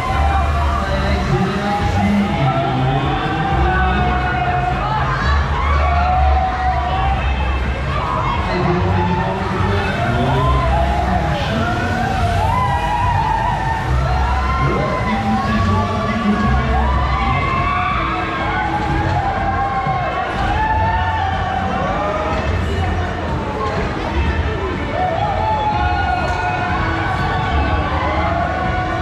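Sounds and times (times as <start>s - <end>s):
fairground music with thumping bass: 0.0s - 29.0s
riders screaming: 0.0s - 29.0s.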